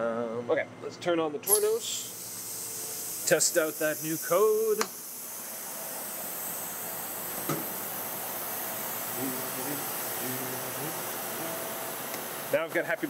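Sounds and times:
machinery hissing: 1.5s - 13.0s.

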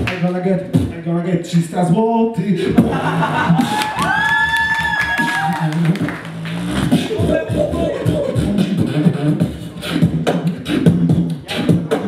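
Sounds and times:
beatboxed bass sounds: 0.0s - 12.0s.

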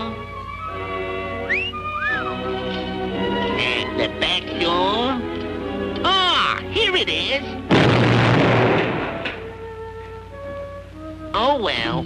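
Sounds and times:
cartoon crash: 7.7s - 9.4s.

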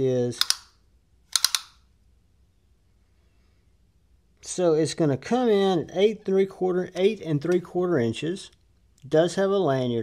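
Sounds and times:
folding knife clicks: 0.4s - 0.7s, 1.3s - 1.8s.

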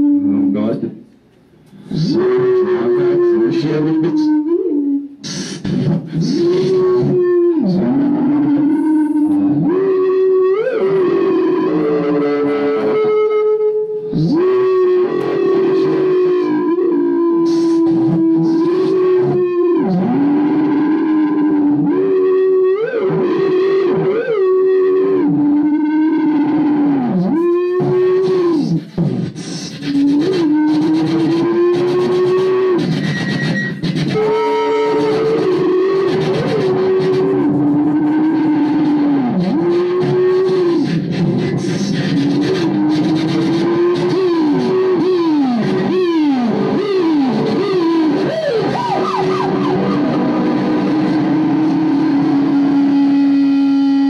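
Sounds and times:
electronic swooping tones: 41.6s - 54.0s.

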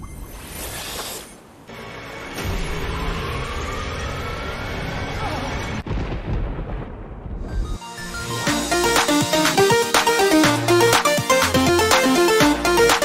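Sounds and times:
rumbling explosion-like effects: 5.7s - 7.8s
cartoon music: 7.8s - 13.0s.

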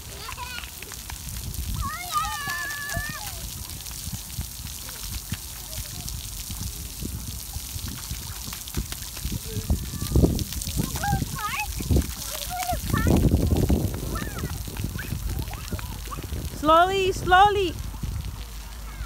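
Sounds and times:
children's voices: 0.0s - 0.9s, 1.7s - 3.8s, 9.2s - 17.8s, 18.5s - 19.0s
water spraying on concrete: 0.0s - 19.0s.

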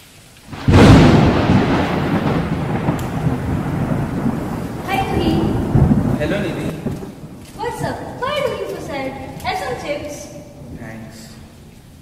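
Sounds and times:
rain-like hiss: 0.0s - 12.0s
thunder crack and rumble: 0.5s - 12.0s.

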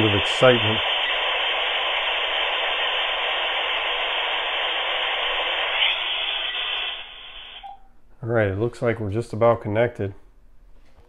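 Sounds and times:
dial-up modem hiss: 0.0s - 7.8s.

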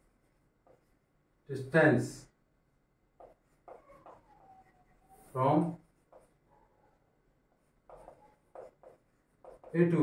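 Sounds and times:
chalk writing on a blackboard: 0.5s - 1.1s, 3.2s - 6.5s, 7.5s - 10.0s
man speaking: 5.3s - 5.8s, 9.7s - 10.0s.

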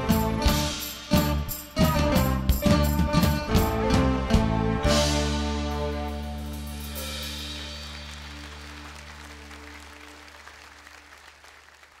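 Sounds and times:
audience applause: 7.6s - 12.0s.

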